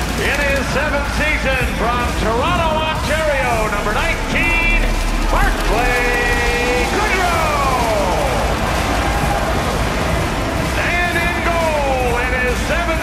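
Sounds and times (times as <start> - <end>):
entrance music with steady bass: 0.0 - 13.0
announcer calling over a public address: 0.2 - 8.6, 10.7 - 13.0.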